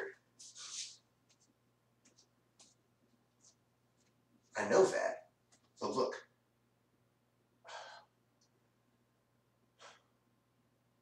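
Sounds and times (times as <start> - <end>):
man exhaling: 7.6 - 8.1, 9.8 - 10.1.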